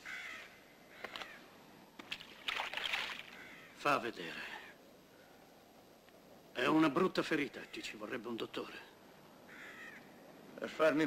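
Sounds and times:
bird harsh calls: 3.3s - 3.8s, 9.5s - 10.1s.

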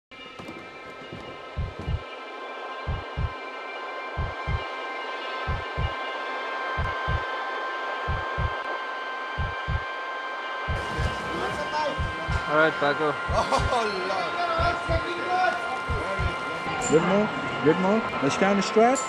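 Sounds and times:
sustained high drone: 1.5s - 18.8s
heartbeat-like double thump: 1.6s - 2.0s, 2.9s - 3.4s, 4.2s - 4.6s, 5.5s - 5.9s, 6.8s - 7.2s, 8.1s - 8.6s, 9.4s - 9.8s, 10.7s - 11.2s, 12.0s - 12.5s, 15.9s - 16.4s.

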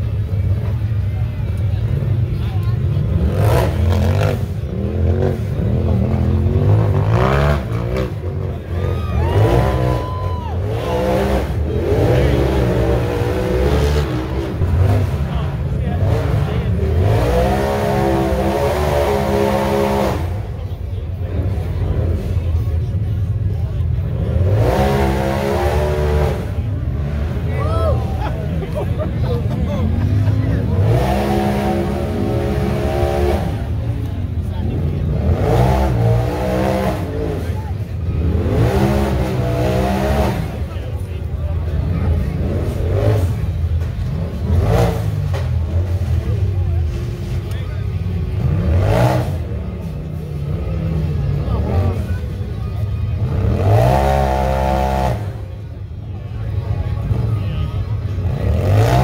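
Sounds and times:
engine revving hard: 3.1s - 8.4s, 16.0s - 20.4s, 24.1s - 27.4s, 30.0s - 33.9s, 34.8s - 40.8s, 41.8s - 46.1s, 48.3s - 52.4s, 53.2s - 55.6s, 58.0s - 59.0s.

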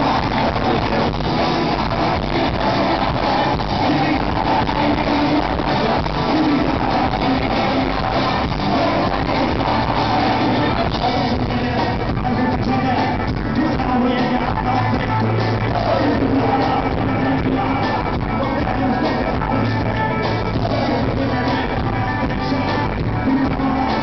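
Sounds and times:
live punk band playing: 0.0s - 24.0s
man singing: 0.0s - 24.0s.

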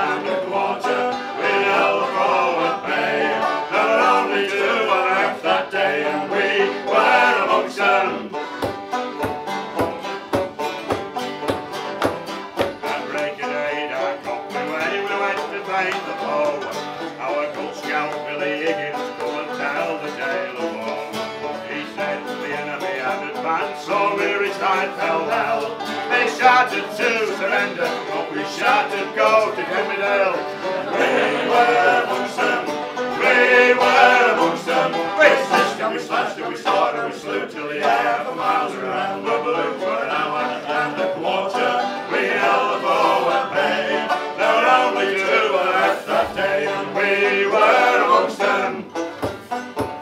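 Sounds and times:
accordion: 0.0s - 50.0s
banjo: 0.0s - 50.0s
mandolin: 0.0s - 50.0s
frame drum beat: 8.5s - 13.0s.

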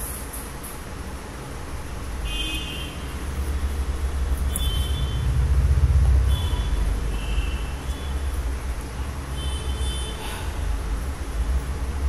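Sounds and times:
vehicle engine rumble: 3.0s - 9.4s.

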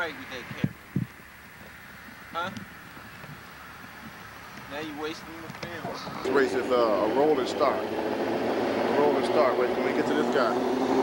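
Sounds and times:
vehicle engine humming: 0.0s - 11.0s
people's voices: 4.6s - 7.9s.

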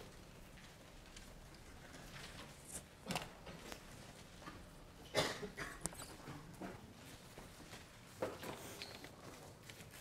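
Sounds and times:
people moving with rustles and knocks: 0.0s - 10.0s.

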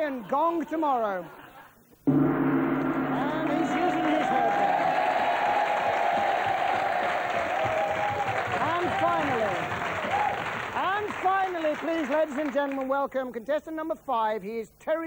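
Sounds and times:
gong ringing: 2.1s - 6.6s
audience applauding and cheering: 3.6s - 12.5s.

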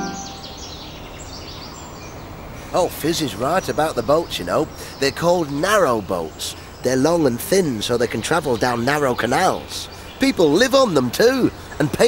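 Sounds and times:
birds chirping: 0.0s - 12.0s
steady low background noise: 0.0s - 12.0s.

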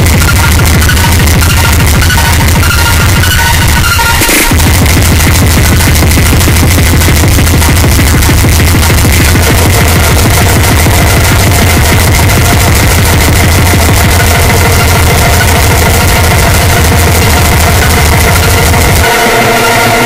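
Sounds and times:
fast distorted kick drum: 0.0s - 20.0s
saturated bass: 0.0s - 20.0s
steady synth tone: 0.0s - 20.0s.

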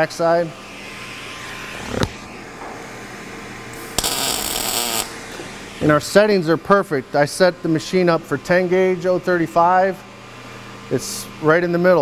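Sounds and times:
fan hum: 0.0s - 12.0s
welding arc: 3.8s - 5.2s.

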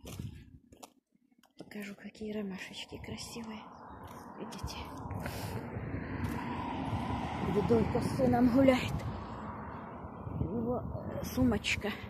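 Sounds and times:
vehicle passing: 3.0s - 12.0s.

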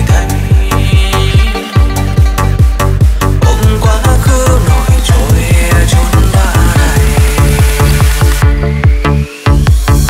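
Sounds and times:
dance music with heavy kick drum: 0.0s - 10.0s.

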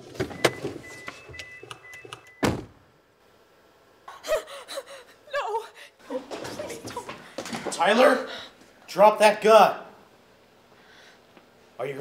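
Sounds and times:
electronic warning chime beeping: 0.4s - 2.5s.

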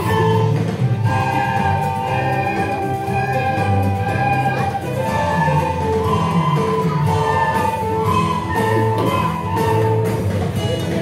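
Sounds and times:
children playing recorders: 0.0s - 10.7s
lower accompaniment: 0.0s - 11.0s.

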